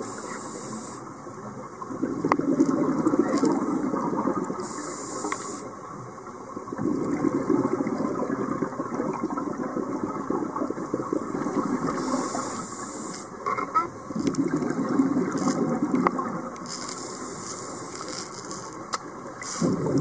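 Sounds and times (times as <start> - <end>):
faint clicks: 5.2 - 5.6
air bubbling underwater: 6.8 - 12.0, 14.2 - 16.5, 19.4 - 20.0.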